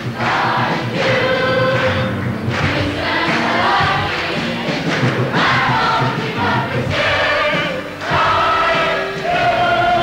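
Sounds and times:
young performers singing together: 0.0 - 10.0.

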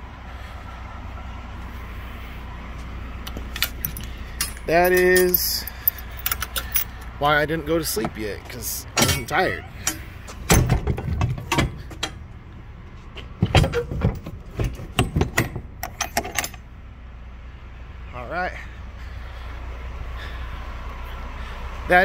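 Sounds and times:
idling truck hum: 0.0 - 22.0
truck door shutting: 8.9 - 12.2.

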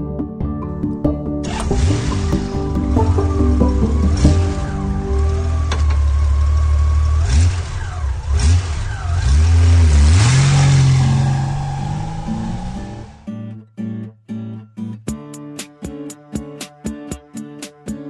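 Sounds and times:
music: 0.0 - 6.4, 12.4 - 18.0
engine idling and revving: 1.4 - 13.3.

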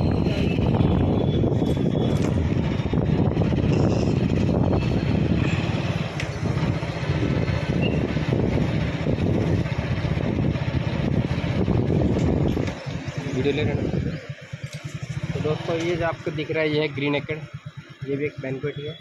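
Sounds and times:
wind rushing over microphone: 0.0 - 12.8
vehicle road noise: 0.0 - 19.0.

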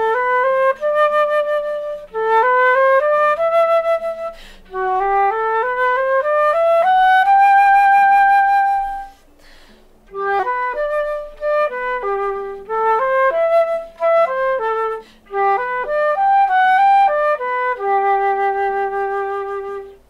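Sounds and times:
flute playing a scale: 0.0 - 20.0.

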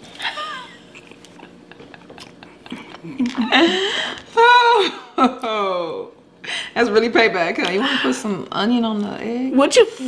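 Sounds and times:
person chewing: 1.0 - 3.4.

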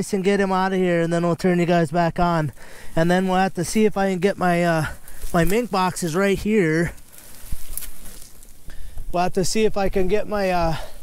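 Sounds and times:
dry reeds rustling and crackling: 0.0 - 10.9.

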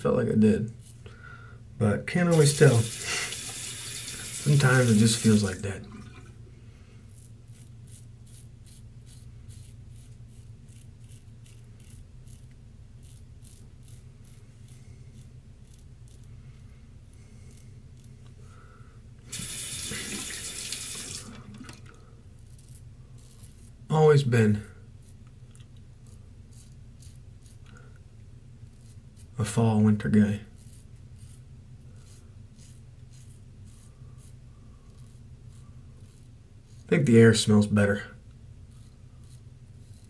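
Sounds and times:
razor scraping stubble: 2.2 - 5.6, 7.0 - 18.4, 19.3 - 21.2, 22.4 - 28.0, 28.6 - 38.0, 38.7 - 40.0
faucet running: 2.4 - 6.3, 19.3 - 21.8.

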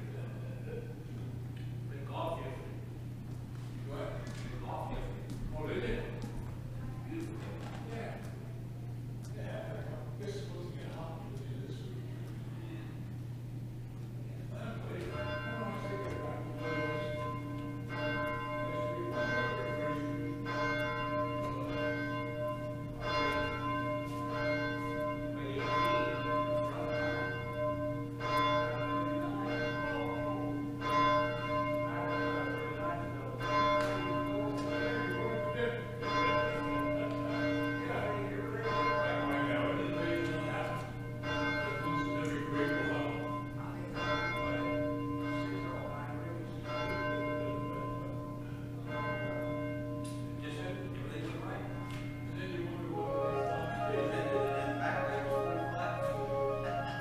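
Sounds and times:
church bells ringing: 14.5 - 57.0.

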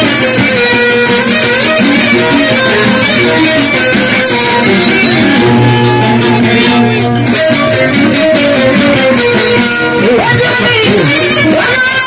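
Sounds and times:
live folk band playing: 0.0 - 12.0
plucked string melody: 0.0 - 12.0.

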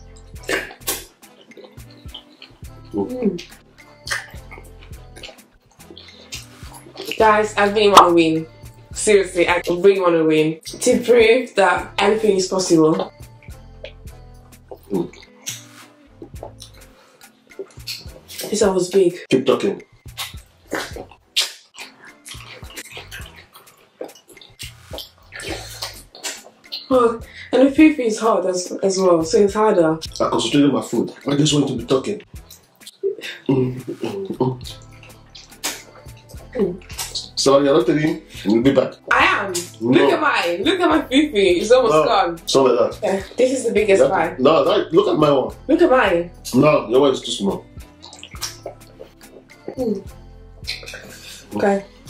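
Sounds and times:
wet chewing and smacking: 0.0 - 8.9, 12.9 - 18.8, 20.0 - 27.3, 30.0 - 41.1, 47.6 - 52.0
mouth clicks: 0.1 - 7.2, 13.3 - 18.6, 20.0 - 27.4, 32.4 - 37.4, 47.7 - 51.6
wet slurps while eating: 3.4 - 7.2, 20.1 - 26.9, 33.7 - 37.4, 47.9 - 49.8, 50.6 - 51.5.

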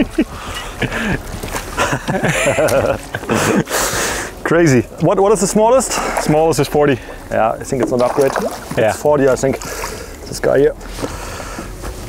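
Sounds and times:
men laughing and exclaiming: 0.0 - 7.0.

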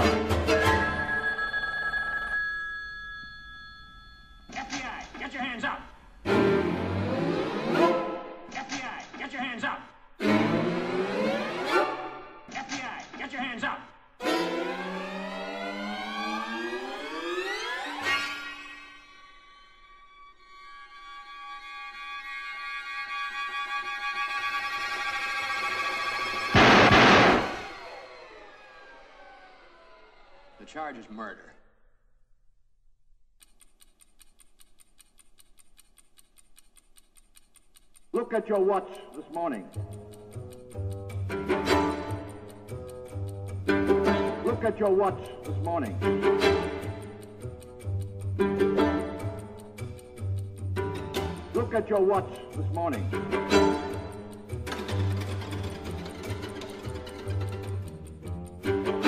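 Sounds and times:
sustained high ringing tone: 0.8 - 4.5
bowed strings playing: 6.2 - 8.4, 43.6 - 45.1, 45.8 - 47.2, 48.2 - 49.5, 53.0 - 59.0
strings sliding upward glissando: 14.2 - 21.4, 26.2 - 30.6
crash tail in music: 26.5 - 28.0.

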